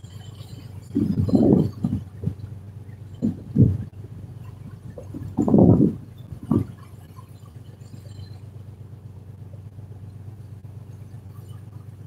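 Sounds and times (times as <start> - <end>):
boat engine running: 0.0 - 12.0
low rumbling bursts: 0.0 - 12.0.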